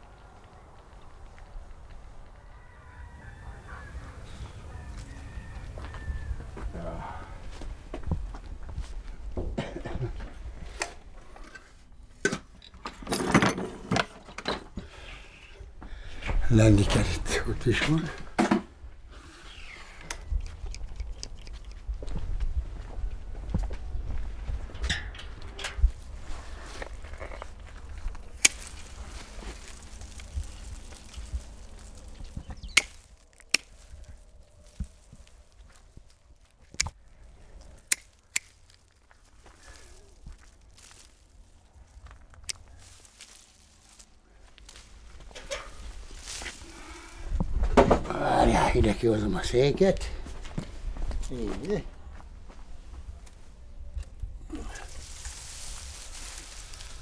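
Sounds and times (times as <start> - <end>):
footsteps: 7.4 - 11.9, 20.3 - 48.2, 49.7 - 53.6, 54.5 - 57.0
rustling: 25.2 - 47.8, 54.5 - 57.0
pruning shears snipping twigs: 28.1 - 35.3, 37.6 - 39.0.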